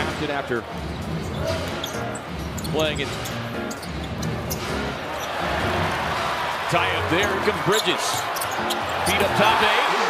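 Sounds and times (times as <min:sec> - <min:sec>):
arena crowd noise: 0:00.0 - 0:03.2, 0:04.2 - 0:10.0.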